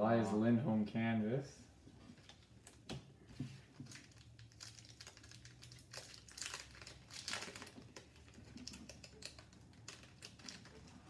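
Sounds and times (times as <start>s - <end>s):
foil wrapper crinkling: 3.8s - 11.0s.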